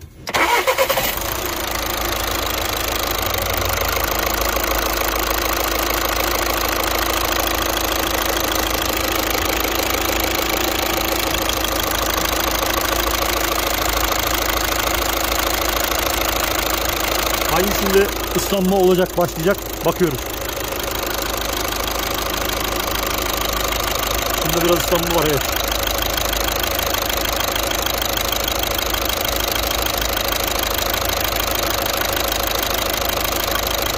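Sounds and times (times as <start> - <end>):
diesel engine cranking: 0.0 - 33.9
diesel engine idling: 0.0 - 33.9.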